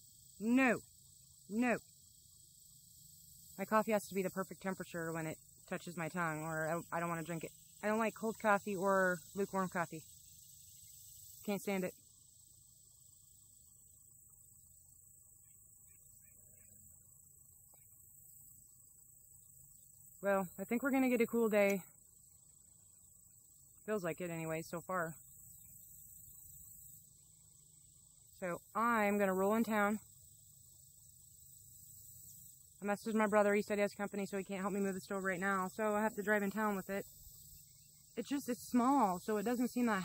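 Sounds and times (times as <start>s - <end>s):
crickets droning: 0.0s - 40.0s.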